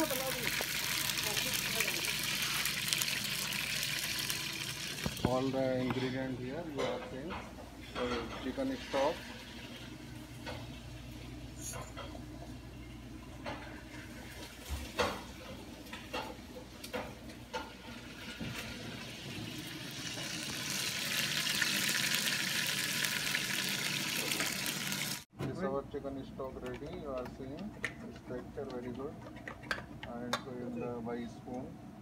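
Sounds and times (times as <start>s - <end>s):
bones sizzling in saucepan: 0.0s - 5.8s, 8.5s - 11.3s, 13.8s - 25.3s.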